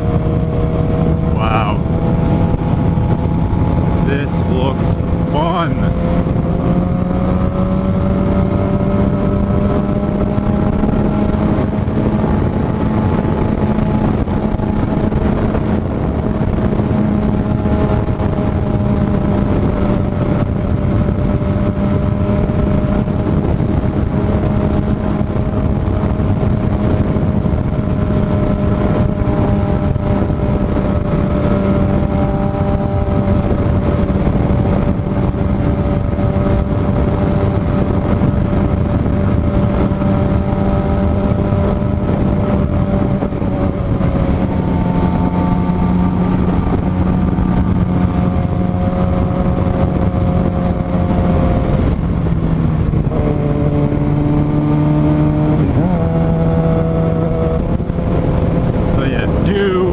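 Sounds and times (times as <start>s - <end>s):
motorcycle engine cruising: 0.0s - 59.9s
wind noise: 0.0s - 59.9s.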